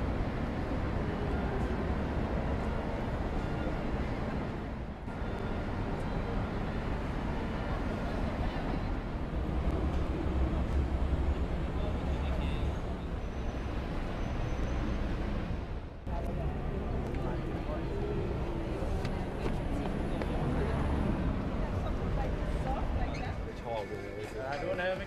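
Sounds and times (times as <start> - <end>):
traffic running: 0.0 - 25.0.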